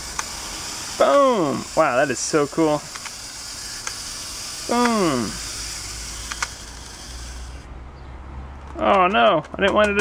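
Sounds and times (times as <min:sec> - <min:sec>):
clockwork mechanism whirring: 0:00.0 - 0:07.7
small clicks: 0:00.1 - 0:00.4, 0:02.8 - 0:03.2, 0:06.2 - 0:07.3, 0:08.6 - 0:10.0.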